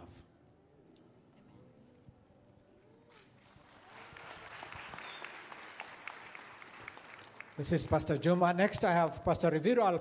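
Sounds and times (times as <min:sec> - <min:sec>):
crowd applauding: 0:03.1 - 0:08.2.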